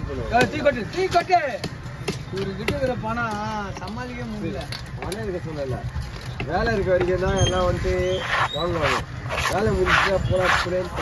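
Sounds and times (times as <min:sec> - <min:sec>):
knife scraping wooden chopping block: 0:08.1 - 0:11.0.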